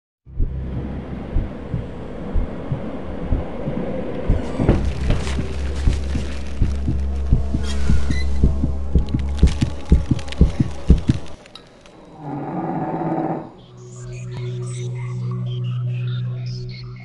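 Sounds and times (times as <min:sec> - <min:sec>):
heavy heartbeat-like thumps: 0:00.3 - 0:11.4
low drone: 0:00.3 - 0:17.0.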